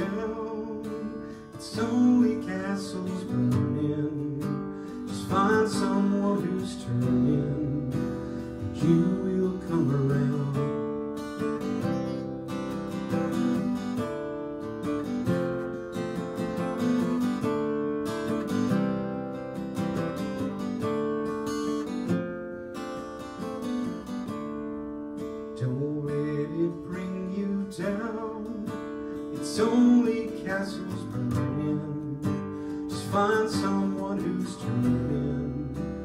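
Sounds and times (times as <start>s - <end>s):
acoustic guitar strumming chords: 0.0s - 36.0s.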